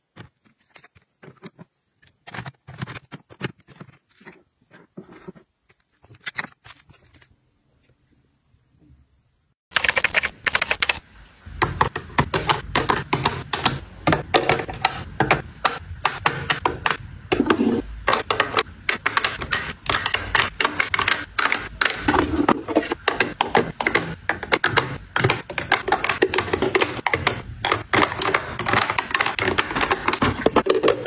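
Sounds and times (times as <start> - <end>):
makeup items clicking and tapping: 11.6 - 31.0.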